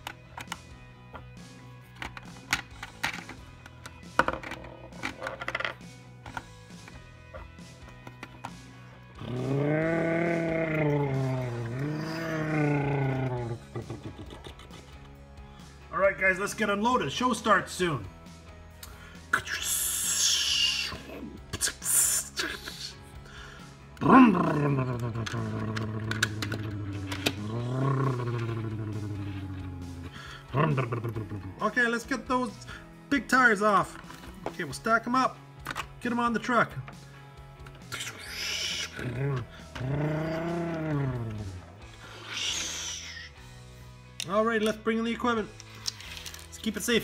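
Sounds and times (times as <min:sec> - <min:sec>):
background music: 0:00.0 - 0:47.0
man making hissing mouth sounds: 0:19.3 - 0:23.0, 0:37.9 - 0:39.2, 0:42.0 - 0:43.5.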